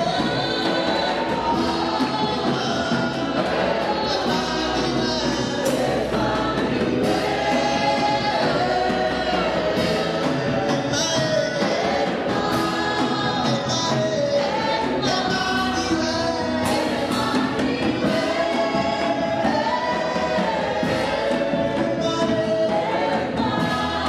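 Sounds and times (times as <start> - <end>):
gospel choir singing: 0.0 - 24.0.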